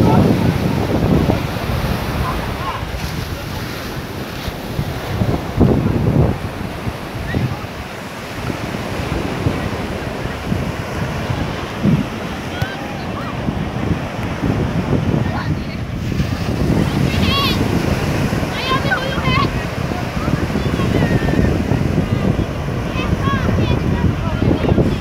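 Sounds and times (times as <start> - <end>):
surf washing onto beach: 0.0 - 25.0
wind rumbling on microphone: 0.0 - 25.0.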